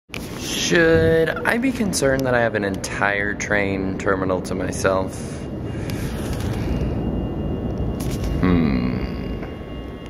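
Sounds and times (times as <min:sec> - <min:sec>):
loud low rumble: 0:00.5 - 0:10.0.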